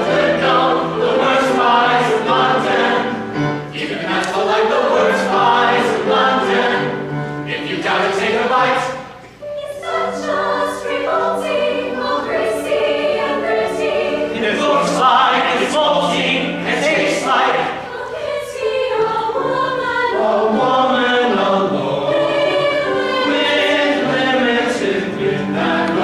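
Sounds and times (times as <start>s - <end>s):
chamber choir singing: 0.0s - 26.0s.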